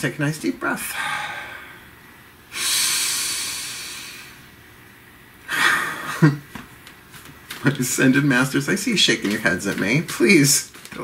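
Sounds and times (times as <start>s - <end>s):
person sighing: 0.8s - 1.8s
person breathing deeply: 0.8s - 4.5s.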